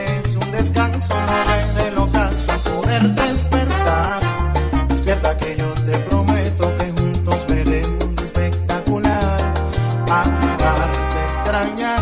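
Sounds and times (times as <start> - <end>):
instrumental salsa music: 0.0 - 12.0.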